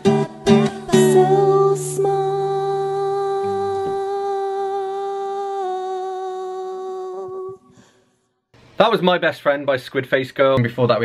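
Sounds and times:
long held vocal note: 0.5 - 7.8.

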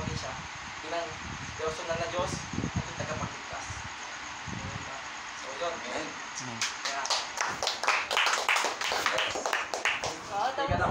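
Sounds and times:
people clapping: 6.6 - 10.5.

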